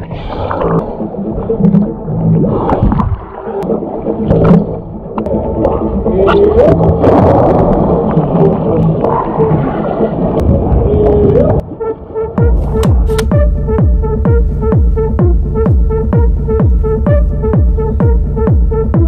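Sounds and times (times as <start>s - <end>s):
muffled water sloshing: 0.0s - 19.0s.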